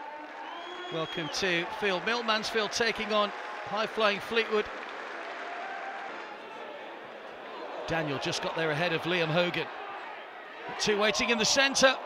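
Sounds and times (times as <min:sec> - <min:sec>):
stadium crowd noise: 0:00.0 - 0:12.0
commentator speaking: 0:10.7 - 0:12.0.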